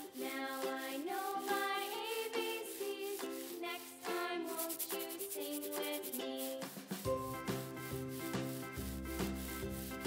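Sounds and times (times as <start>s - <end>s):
children's instrumental music: 0.0s - 10.0s.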